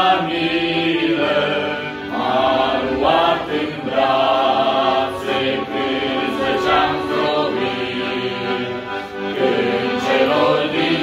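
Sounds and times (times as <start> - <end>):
accordion chords: 0.0 - 11.0
male vocal group singing a hymn: 0.0 - 11.0.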